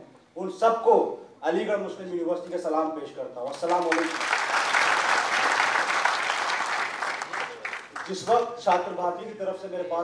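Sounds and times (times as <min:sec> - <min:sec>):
audience applauding: 0:03.5 - 0:08.4.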